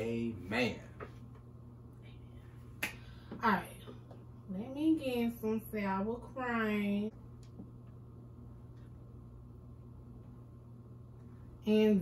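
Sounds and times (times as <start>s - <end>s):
hand clap: 2.8s - 3.1s.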